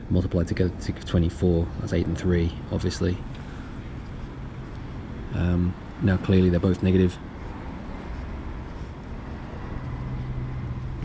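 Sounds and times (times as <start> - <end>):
low engine hum: 0.0 - 11.0
road traffic rumble: 0.0 - 11.0.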